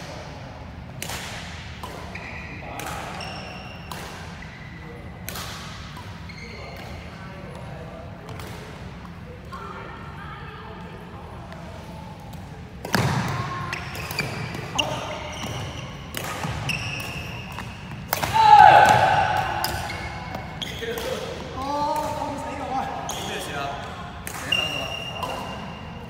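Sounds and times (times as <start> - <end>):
rackets hitting shuttlecock: 1.0 - 4.5, 5.2 - 6.9, 12.3 - 22.4, 23.1 - 25.8
sneakers squeaking on wooden floor: 2.1 - 3.8, 6.2 - 6.8, 13.0 - 18.9, 19.6 - 21.2, 23.0 - 25.8
players shouting: 18.2 - 19.9.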